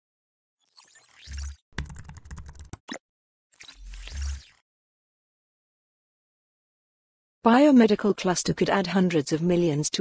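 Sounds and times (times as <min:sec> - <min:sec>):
keyboard typing: 0:01.3 - 0:03.0.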